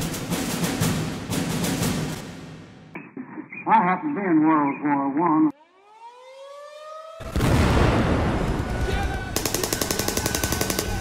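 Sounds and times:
man talking: 3.2s - 5.5s
siren winding up: 5.5s - 7.4s.

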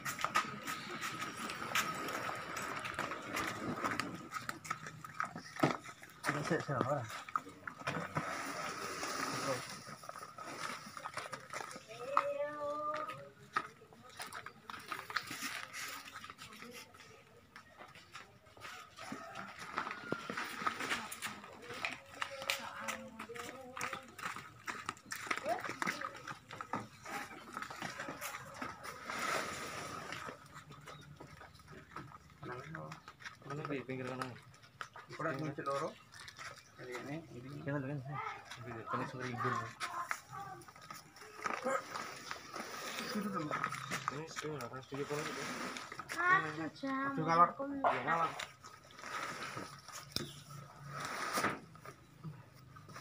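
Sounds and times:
knocks and rustles of plants: 0.0s - 47.1s, 47.9s - 53.0s
people talking: 21.0s - 24.3s.

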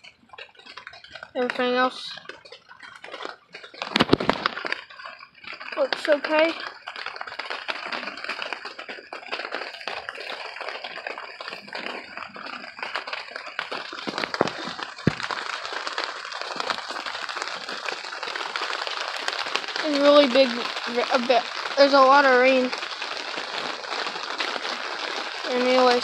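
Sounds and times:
rain pattering on a cover: 0.0s - 26.0s.

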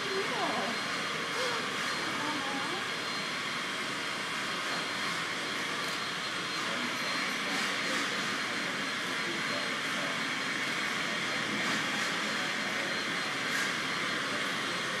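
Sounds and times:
faint voices: 0.0s - 15.0s.

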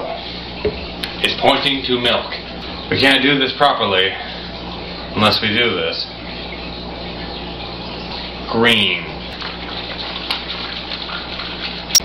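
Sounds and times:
low hum: 0.4s - 10.1s.

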